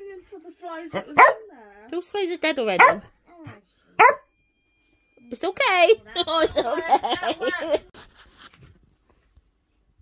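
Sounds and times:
small dog barking: 0:01.0 - 0:01.5, 0:02.8 - 0:03.0, 0:04.0 - 0:04.3.

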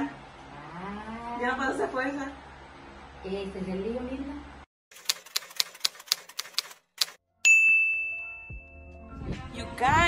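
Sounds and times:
typewriter key clacks: 0:04.9 - 0:07.2.

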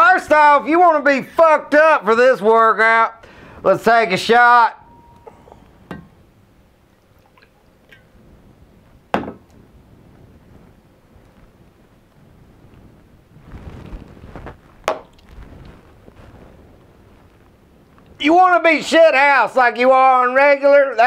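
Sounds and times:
glass handling noise: 0:04.8 - 0:06.2, 0:09.1 - 0:09.5
shot glass clicking: 0:04.9 - 0:06.2
shot glass knocking on counter: 0:05.2 - 0:06.1, 0:09.1 - 0:09.4.

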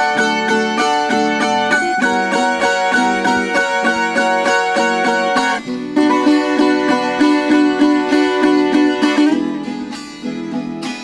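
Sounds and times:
guitar accompaniment: 0:00.0 - 0:11.0
tiple melody picked: 0:00.0 - 0:11.0.

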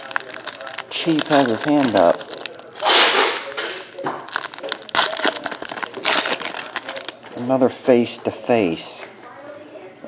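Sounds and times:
foil wrapper crinkling and tearing: 0:00.0 - 0:07.3.

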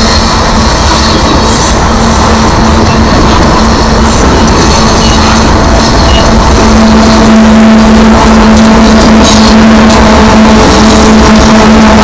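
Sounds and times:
diesel locomotive: 0:00.0 - 0:12.0
train wheels rolling on rails: 0:00.0 - 0:12.0.

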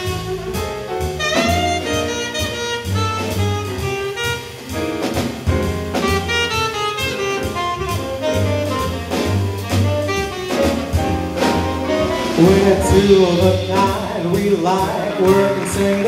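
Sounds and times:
jazz saxophone solo: 0:00.0 - 0:13.9
piano bass and drums combo: 0:00.0 - 0:16.0.

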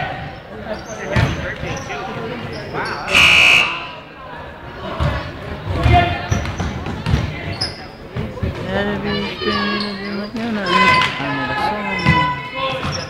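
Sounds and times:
crowd voices: 0:00.0 - 0:13.0
scoreboard buzzer: 0:03.1 - 0:04.0.

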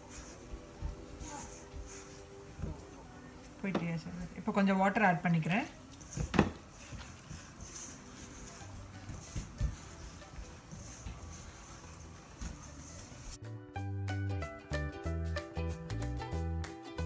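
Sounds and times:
hands kneading dough: 0:00.0 - 0:04.7, 0:05.3 - 0:13.4
background music: 0:00.0 - 0:17.0.

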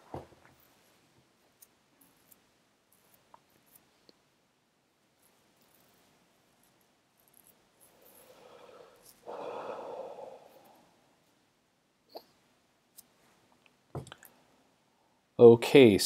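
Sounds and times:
person sighing: 0:08.4 - 0:10.7.

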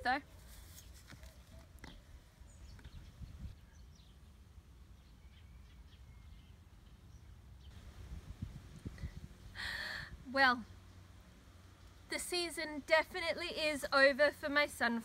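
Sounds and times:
brief rustle: 0:00.3 - 0:02.0
faint bird chirps: 0:00.6 - 0:07.8
steady low rumble: 0:07.7 - 0:11.0.

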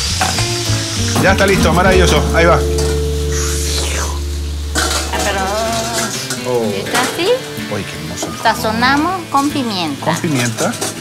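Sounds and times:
oil sizzling: 0:00.0 - 0:11.0
steady low hum: 0:01.7 - 0:07.7.

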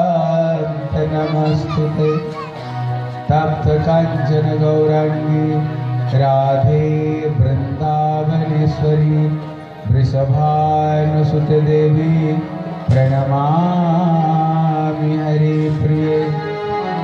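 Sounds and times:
mantra chanting: 0:03.2 - 0:16.8.

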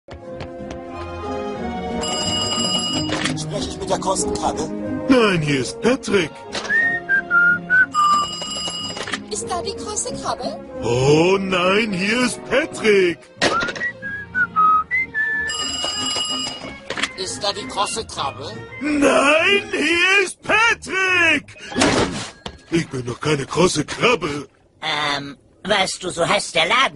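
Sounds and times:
background music: 0:00.1 - 0:23.4
telephone bell ringing: 0:02.0 - 0:03.3, 0:07.9 - 0:09.2, 0:15.5 - 0:16.8
whistled tune: 0:06.6 - 0:08.4, 0:13.4 - 0:15.8.

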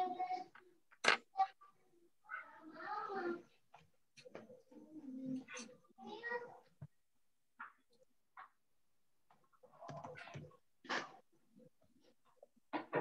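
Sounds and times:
faint voices over video call: 0:00.0 - 0:07.0, 0:09.5 - 0:11.2.

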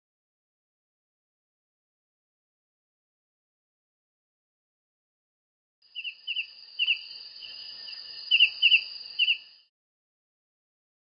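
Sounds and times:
bird chirps: 0:05.9 - 0:09.7
high insect trill: 0:05.9 - 0:09.7.

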